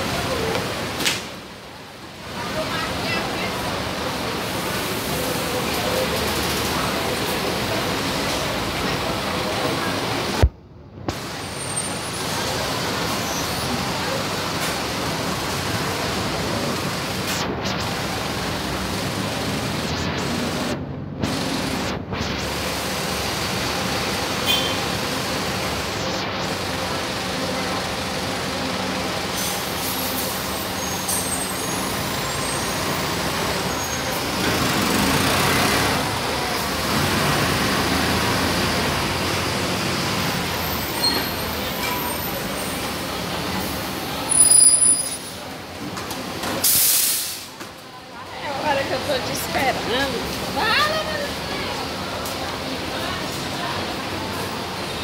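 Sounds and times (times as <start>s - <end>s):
bus diesel engines running: 0.0s - 55.0s
air brake hiss: 46.6s - 47.6s.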